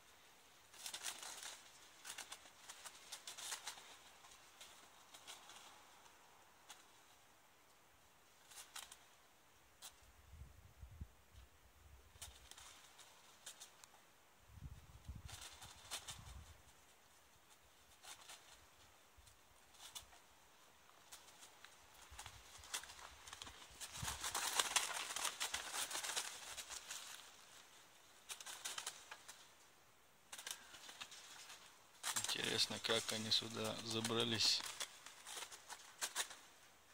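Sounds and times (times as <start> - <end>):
crows flapping wings: 0.7 - 7.0, 12.1 - 13.9, 15.1 - 16.7, 17.9 - 29.6, 30.3 - 36.7.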